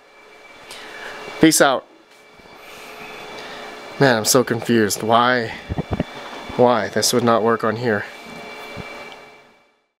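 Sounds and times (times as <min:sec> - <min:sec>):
computer fans humming: 0:00.0 - 0:09.8.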